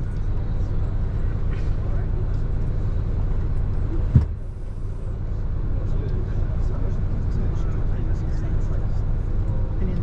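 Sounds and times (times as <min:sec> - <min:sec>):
bus engine and tyres rumbling: 0:00.0 - 0:10.0
loud thump: 0:04.1 - 0:04.4.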